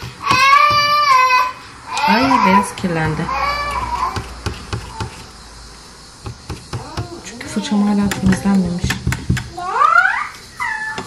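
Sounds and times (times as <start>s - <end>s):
paintbrushes tapping paint set: 7.9s - 9.5s.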